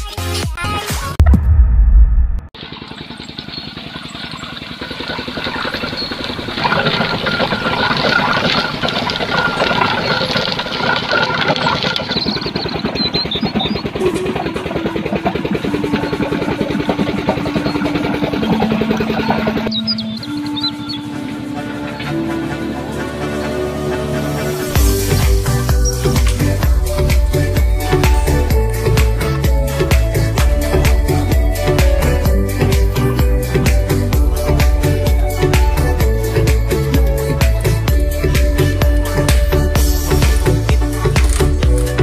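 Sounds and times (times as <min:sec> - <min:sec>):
music: 0:00.0 - 0:01.6, 0:14.0 - 0:42.0
crushing mill running: 0:02.8 - 0:19.8.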